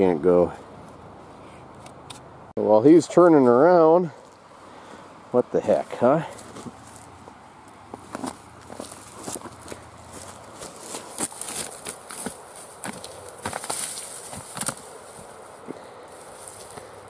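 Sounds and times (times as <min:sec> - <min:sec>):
rock tumbling through grass: 0:07.9 - 0:16.9.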